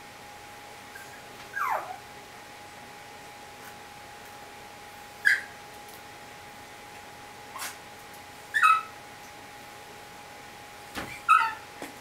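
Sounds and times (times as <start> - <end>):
puppy yipping: 0.9 - 2.0, 5.2 - 5.5, 8.5 - 8.9, 11.1 - 11.6.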